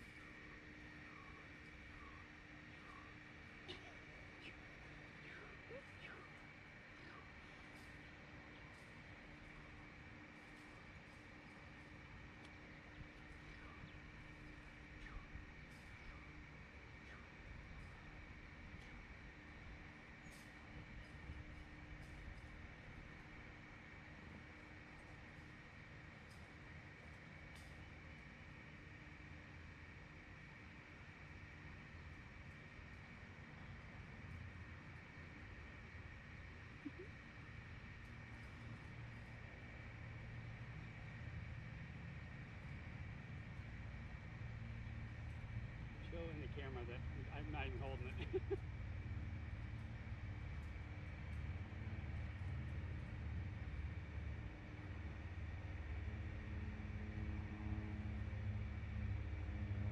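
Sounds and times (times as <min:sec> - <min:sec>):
steady high whine: 0:00.0 - 0:59.9
steady low hum: 0:00.0 - 0:59.9.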